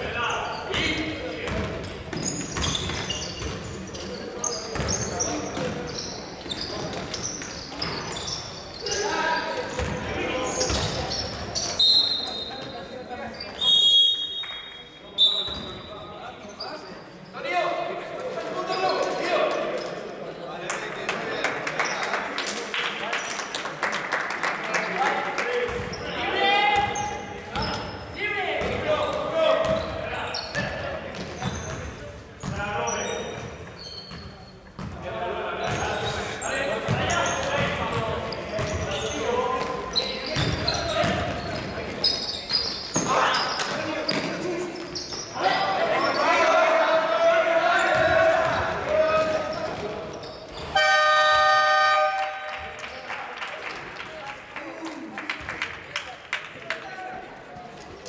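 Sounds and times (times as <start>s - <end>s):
sneaker squeaks: 0.0s - 17.6s, 18.2s - 20.1s, 25.7s - 46.6s, 47.7s - 53.0s
basketball bouncing on court: 0.7s - 3.8s, 4.7s - 5.8s, 9.7s - 11.6s, 28.6s - 28.9s, 29.6s - 32.6s, 34.8s - 35.0s, 36.9s - 42.0s, 47.9s - 50.0s
players shouting: 45.4s - 49.6s.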